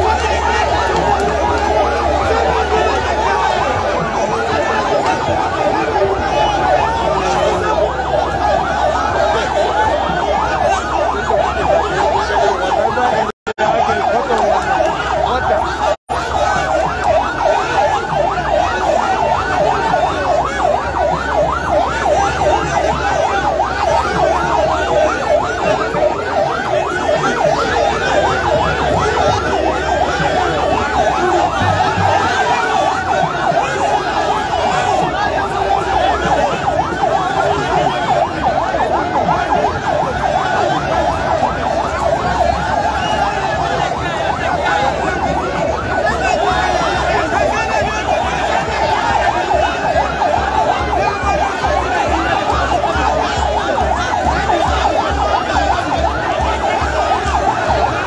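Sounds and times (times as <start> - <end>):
dense crowd noise: 0.0 - 58.0
fast warbling siren: 0.0 - 58.0.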